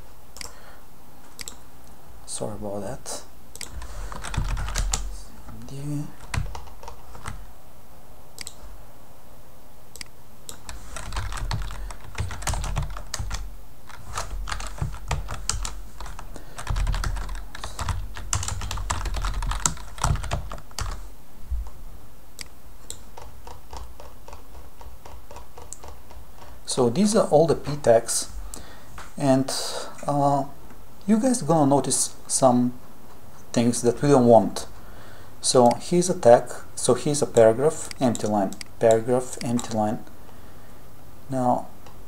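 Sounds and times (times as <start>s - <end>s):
computer keyboard typing: 3.6s - 5.1s, 6.2s - 7.4s, 10.0s - 21.0s, 22.4s - 26.6s, 37.9s - 39.9s.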